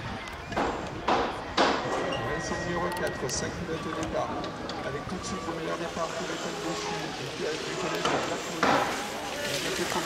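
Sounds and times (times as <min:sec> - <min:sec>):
voices of people: 0:00.0 - 0:10.0.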